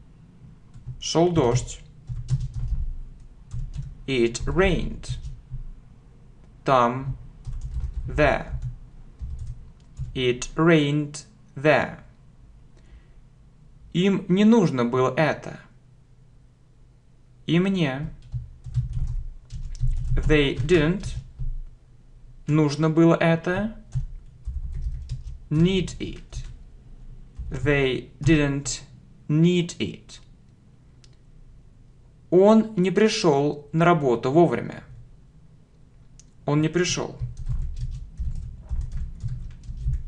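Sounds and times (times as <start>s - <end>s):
keyboard typing: 0.7s - 5.7s, 7.1s - 10.6s, 18.0s - 21.6s, 23.6s - 26.6s, 27.3s - 28.4s, 37.1s - 40.0s.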